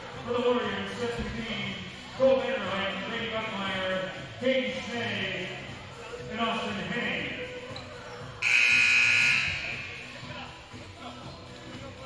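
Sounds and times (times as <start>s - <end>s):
scoreboard horn buzz: 8.4s - 9.7s.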